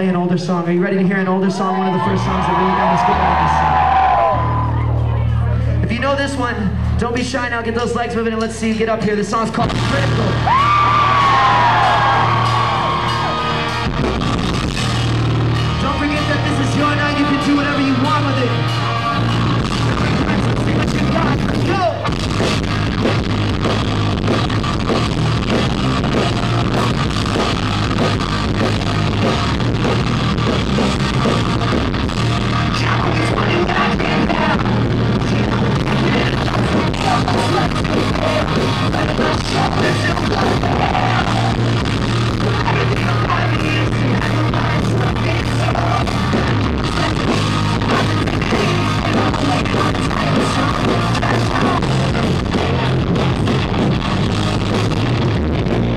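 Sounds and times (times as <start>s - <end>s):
pop-punk band playing live: 0.0s - 55.9s
lead vocalist singing: 32.8s - 41.6s, 42.4s - 53.9s.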